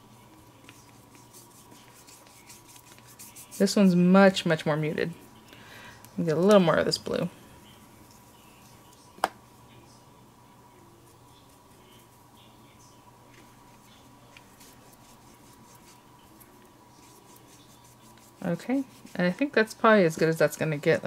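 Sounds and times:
brush scratching on paper: 0.0 - 4.1, 13.4 - 19.4.

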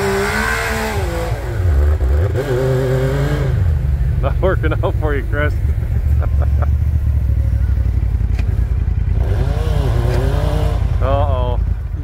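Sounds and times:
engine revving: 0.0 - 12.0
engine idling with deep rumble: 3.6 - 12.0.

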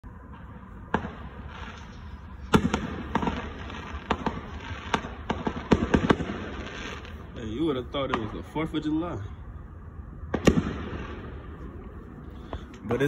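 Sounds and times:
fireworks bangs: 0.2 - 9.0, 10.3 - 13.0.

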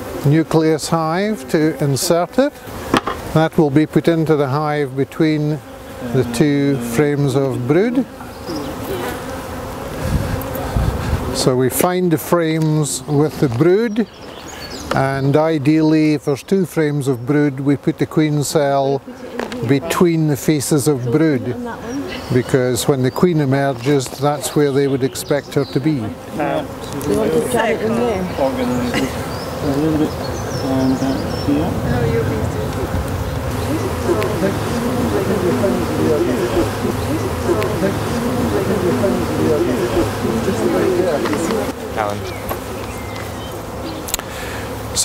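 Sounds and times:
honeybees buzzing: 0.0 - 45.0.

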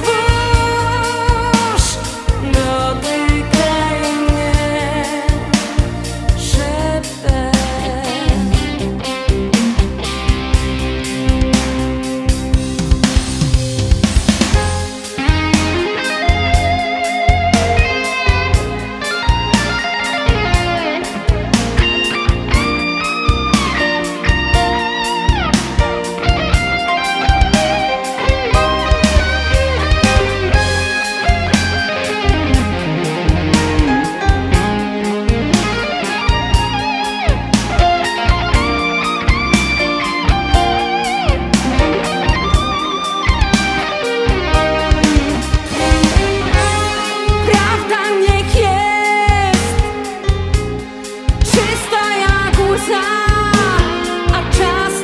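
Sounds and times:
bass and drums: 0.0 - 55.0
electric guitar melody: 0.0 - 55.0.

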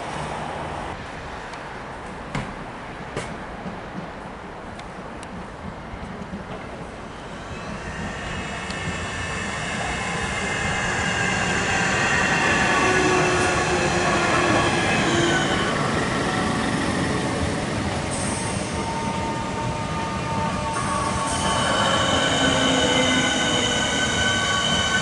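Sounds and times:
wheels rumbling on rail: 0.0 - 25.0
electric train whine: 7.0 - 25.0.

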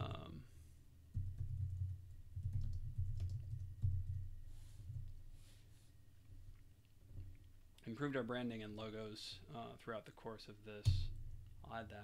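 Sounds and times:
keyboard typing: 1.1 - 4.2.

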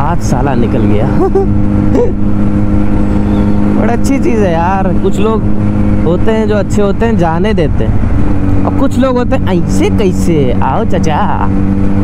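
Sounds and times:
low road rumble: 0.0 - 12.0
motorcycle engine cruising: 0.0 - 12.0.

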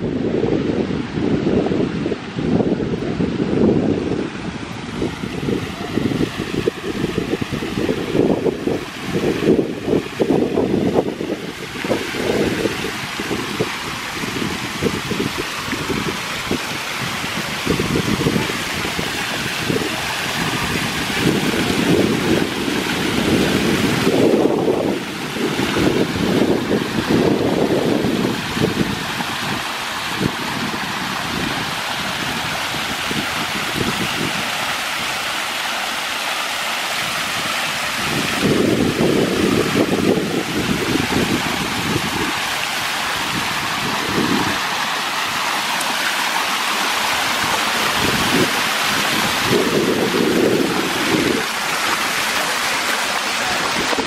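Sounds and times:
wind buffeting microphone: 0.0 - 35.9, 36.9 - 54.0
fountain water splashing: 0.0 - 54.0.

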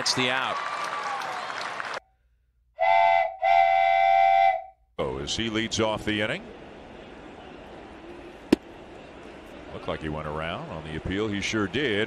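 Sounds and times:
whistle-like tone: 2.8 - 4.8.

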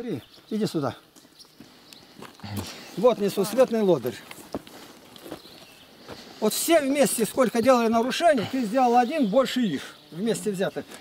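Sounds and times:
footsteps crunching on gravel: 1.1 - 8.1, 10.5 - 11.0.

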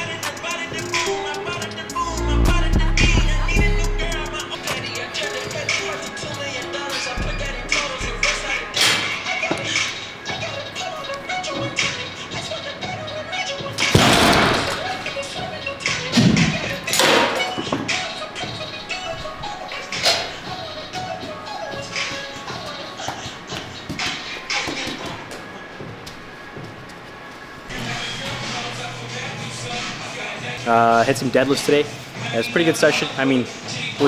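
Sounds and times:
background music with wavering melody: 0.0 - 34.0.

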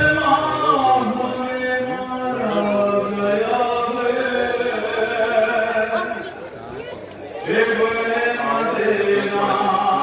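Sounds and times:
man chanting a lament: 0.0 - 6.2, 7.4 - 10.0.

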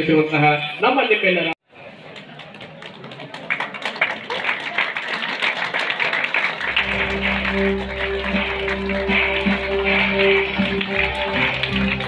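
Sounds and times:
audience clapping: 2.1 - 12.0.

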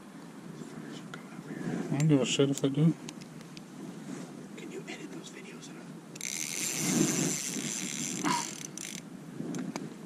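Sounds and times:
fishing reel whirring: 6.2 - 9.1.

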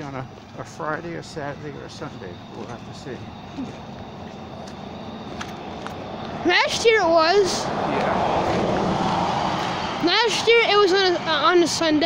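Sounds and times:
car passing: 0.0 - 12.0.

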